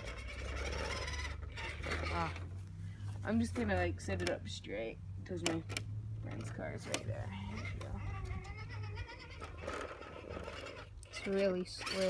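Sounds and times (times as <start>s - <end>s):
electric motor and gears whining: 0.0s - 12.0s.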